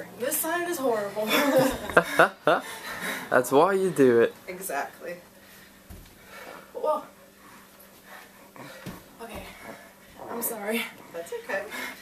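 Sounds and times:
faint breathing: 2.0s - 3.3s, 5.4s - 10.3s
foot thumping on carpet: 5.8s - 6.2s.

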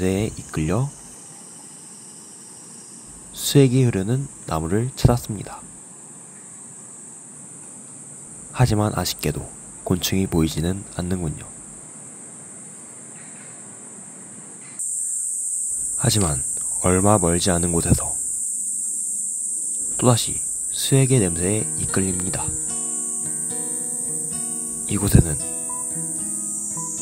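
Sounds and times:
faint hiss: 0.0s - 27.0s
insect chorus buzzing: 0.0s - 27.0s.

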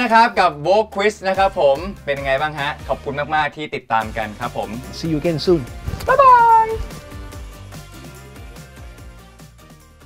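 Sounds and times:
background music: 0.0s - 10.0s
man calling out: 6.1s - 6.8s.

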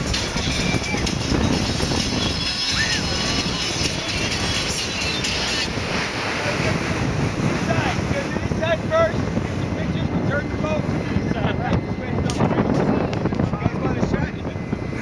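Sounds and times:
speedboat rushing across water: 0.0s - 15.0s
wind buffeting microphone: 0.0s - 15.0s.

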